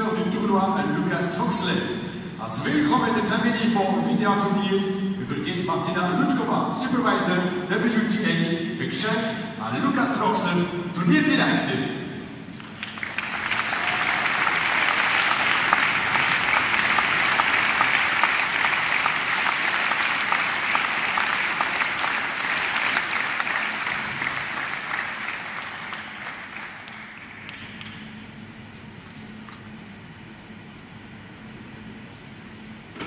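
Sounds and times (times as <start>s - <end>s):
audience clapping: 12.5s - 28.4s.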